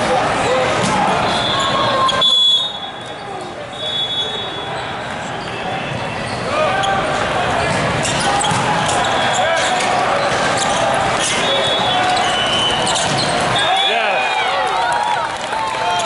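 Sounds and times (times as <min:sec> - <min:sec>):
chatter of many voices: 0:00.0 - 0:16.0
sneaker squeaks on court: 0:07.6 - 0:13.6.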